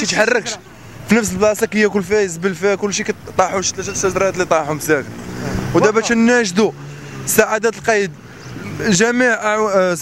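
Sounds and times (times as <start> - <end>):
man speaking: 0.0 - 8.2.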